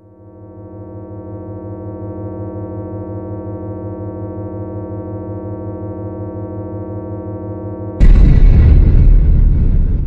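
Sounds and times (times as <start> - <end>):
deep rumbling boom: 8.0 - 10.0.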